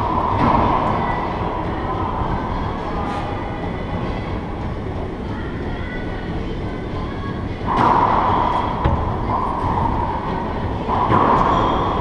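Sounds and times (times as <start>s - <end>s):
rumbling background noise: 0.0s - 12.0s.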